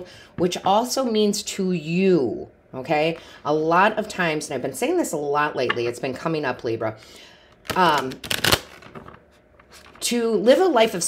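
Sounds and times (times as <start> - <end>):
cards being shuffled: 7.6 - 10.0.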